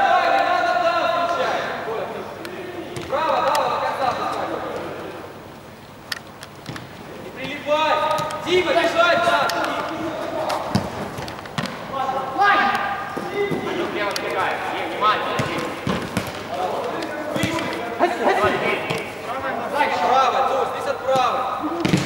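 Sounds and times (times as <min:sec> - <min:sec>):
players shouting: 0:00.0 - 0:05.5, 0:07.0 - 0:22.0
football being kicked: 0:10.6 - 0:11.8, 0:15.4 - 0:16.5, 0:21.2 - 0:22.0.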